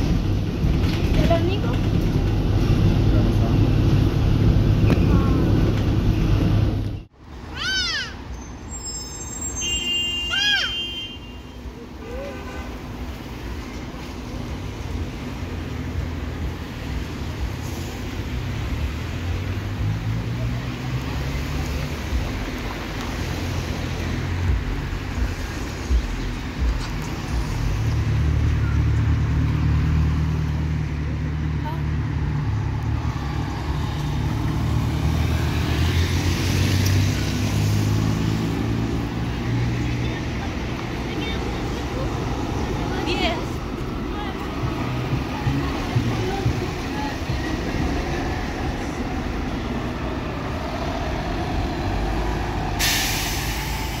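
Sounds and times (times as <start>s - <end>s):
bus diesel engine accelerating: 0.0s - 7.2s, 13.0s - 54.0s
short hiss: 52.8s - 54.0s.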